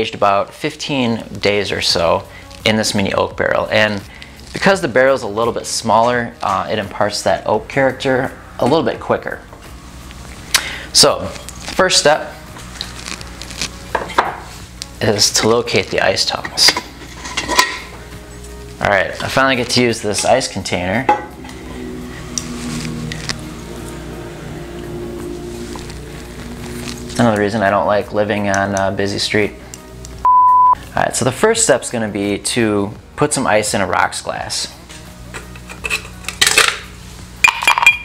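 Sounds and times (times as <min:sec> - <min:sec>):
low steady hum: 0:05.6 - 0:30.9
ice tongs clinking on ice: 0:37.4 - 0:38.0.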